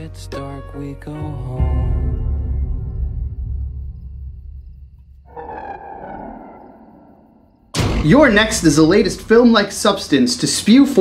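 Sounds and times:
eerie sustained tone: 5.3s - 7.9s.

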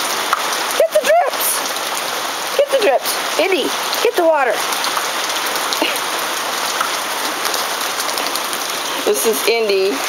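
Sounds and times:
steady rain falling: 0.0s - 10.0s
single raindrops ticking: 0.2s - 0.8s, 3.8s - 8.8s.

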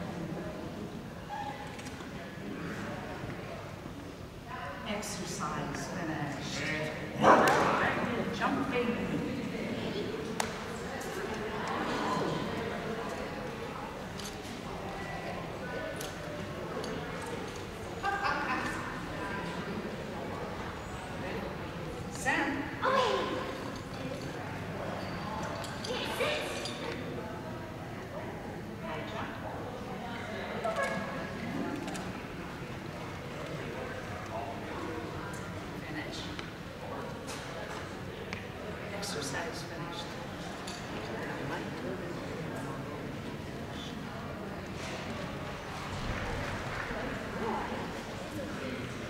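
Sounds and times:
indistinct talking: 0.0s - 49.0s
low room noise: 0.0s - 49.0s
voices murmuring in echoing hall: 0.0s - 49.0s.

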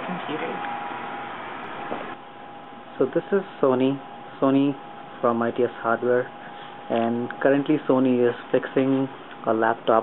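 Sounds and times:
desktop computers whirring: 0.0s - 10.0s
room hiss: 0.0s - 10.0s.

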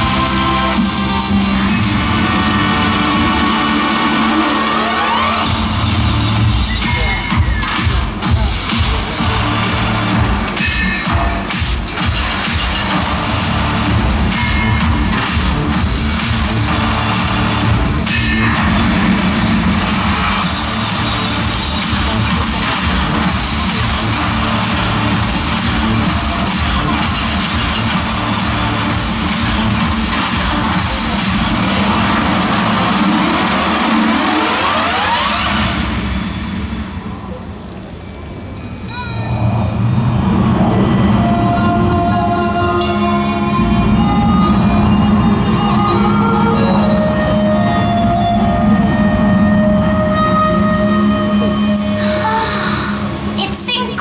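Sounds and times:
fast low pulsing: 0.0s - 37.4s
soundtrack music: 0.0s - 54.0s
heavy machinery sound effects: 0.6s - 37.8s.

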